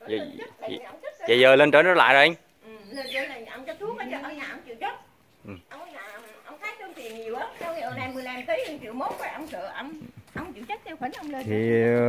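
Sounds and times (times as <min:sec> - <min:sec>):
voices talking: 0:00.0 - 0:12.0.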